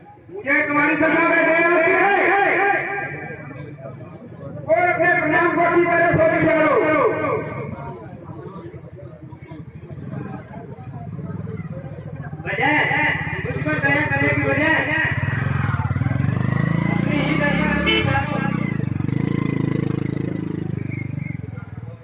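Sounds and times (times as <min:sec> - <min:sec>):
person's voice through loudspeaker: 0:00.3 - 0:03.7, 0:04.5 - 0:07.8, 0:12.3 - 0:15.8, 0:16.7 - 0:18.8.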